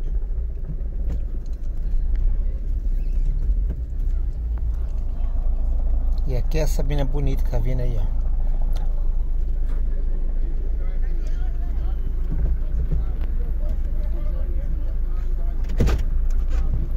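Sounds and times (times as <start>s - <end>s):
car engine and road noise: 0.0s - 16.9s
faint voices: 0.0s - 16.9s.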